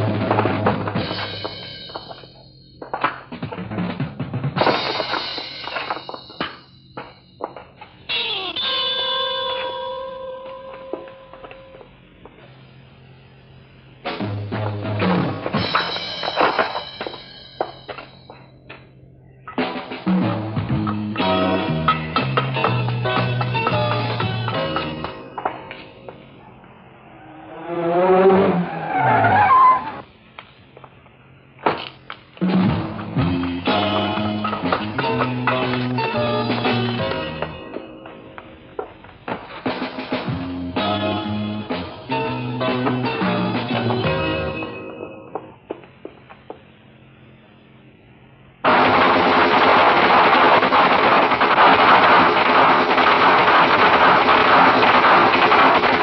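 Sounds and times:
tyres squealing: 7.8 - 11.8, 26.4 - 30.0
car engine: 25.4 - 30.0.

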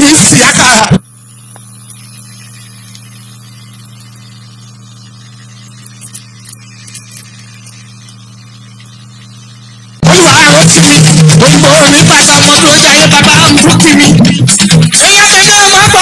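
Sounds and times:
low electrical hum with hiss: 0.0 - 13.3
small clicks: 2.8 - 3.2, 5.7 - 8.2
music: 10.0 - 16.0.

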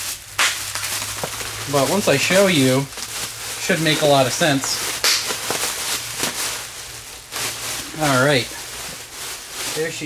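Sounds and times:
bubble wrap crinkling: 0.0 - 10.0
bubble wrap snapping: 0.0 - 10.0.

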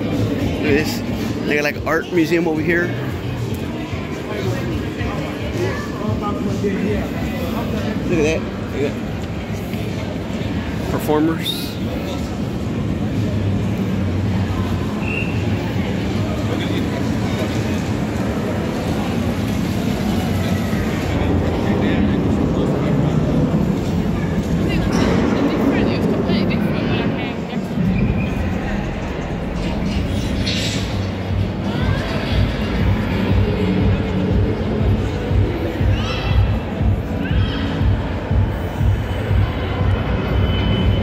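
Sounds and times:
murmur of voices: 0.0 - 41.0
low rumble: 21.2 - 35.9.

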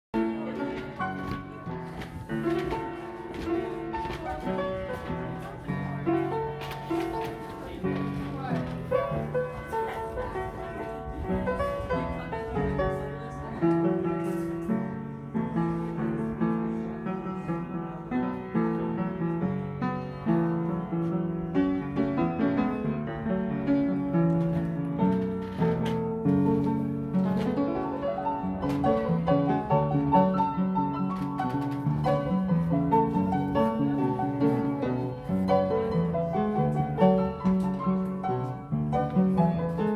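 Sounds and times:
player piano playing: 0.1 - 39.9.

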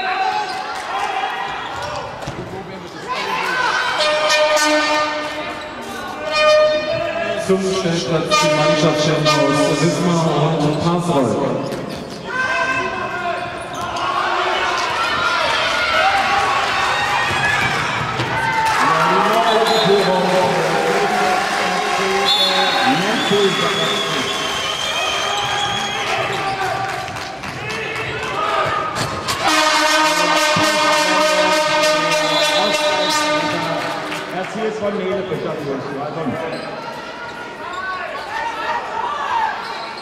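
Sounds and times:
shouting voices echoing: 3.1 - 11.6, 18.4 - 24.3, 25.2 - 35.4
loud steady pitched tone: 4.0 - 11.0, 29.4 - 34.3.

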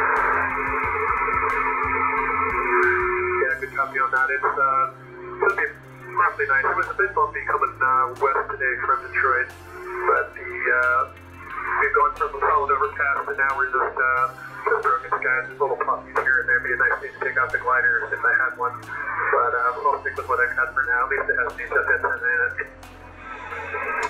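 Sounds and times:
man talking over radio: 3.3 - 22.7.

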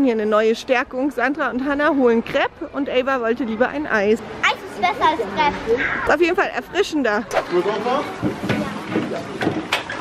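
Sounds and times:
plastic boat knocking: 8.1 - 10.0.

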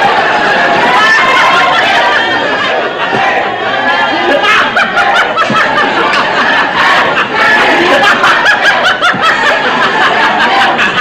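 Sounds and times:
studio audience laughing: 0.0 - 11.0.

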